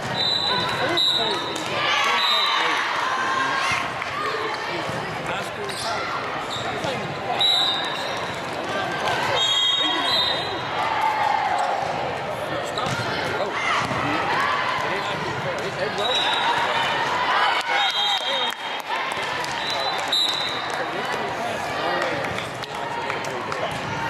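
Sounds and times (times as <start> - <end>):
players and spectators talking: 0.0 - 24.0
volleyballs struck and bouncing: 12.8 - 14.2.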